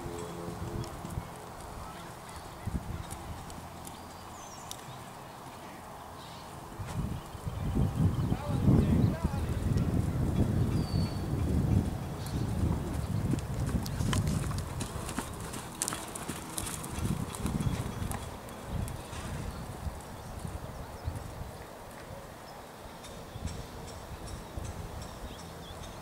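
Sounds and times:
horse hoofbeats on sand: 9.1s - 21.4s.

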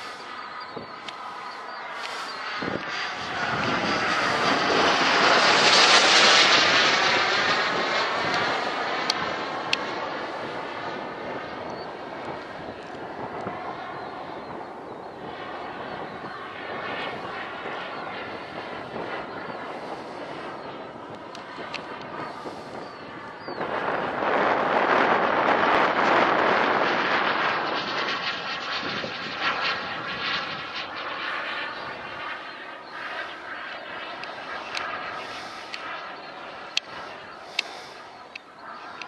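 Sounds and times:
model jet turbine passing: 0.0s - 39.0s.

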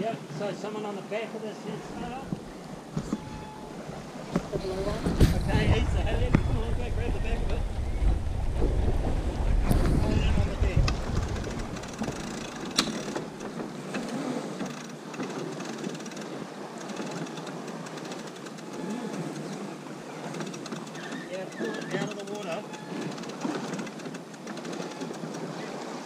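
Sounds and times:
rush of wind and water: 0.0s - 26.0s
wind buffeting microphone: 1.8s - 14.5s
deck gear clicks: 10.8s - 19.6s.

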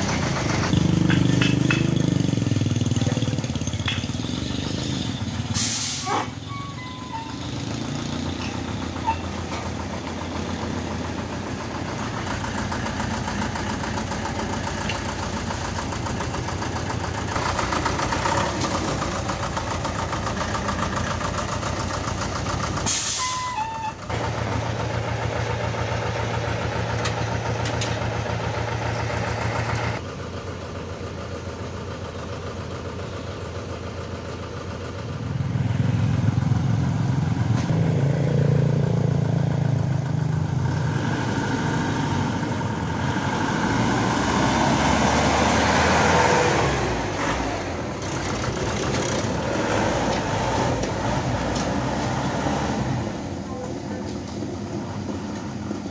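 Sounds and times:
diesel truck engine running: 0.0s - 55.9s.

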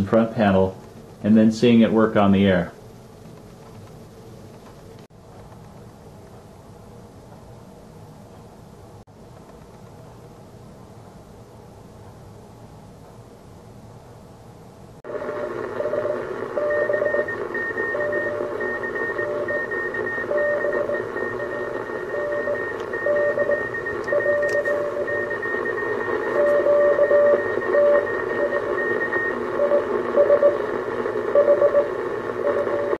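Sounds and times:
radio band noise hiss: 0.0s - 2.8s, 18.2s - 32.9s
morse code beat tones: 15.1s - 32.9s.

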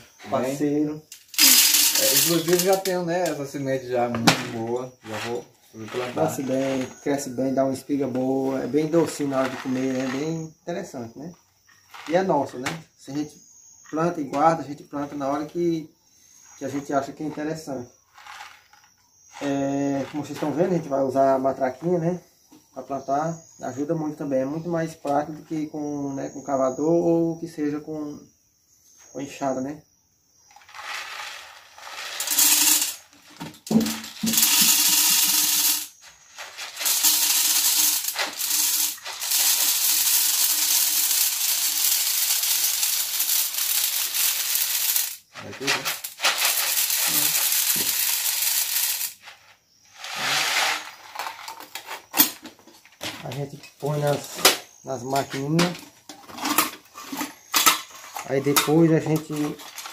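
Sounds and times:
maize kernels pouring rattle: 1.1s - 3.4s, 8.4s - 10.4s, 30.5s - 49.4s, 50.0s - 51.8s, 56.4s - 59.9s.

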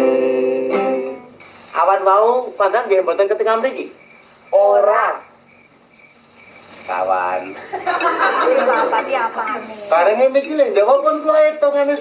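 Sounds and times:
crickets chirring: 2.6s - 8.3s.

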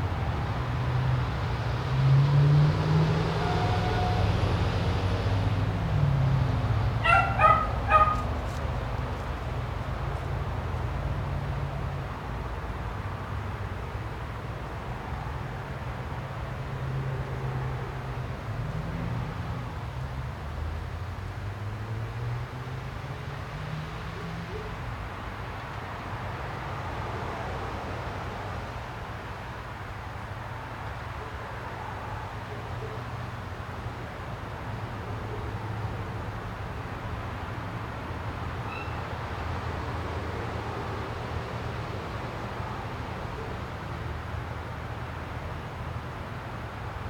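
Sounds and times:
dog barking high-pitched: 7.0s - 8.3s.

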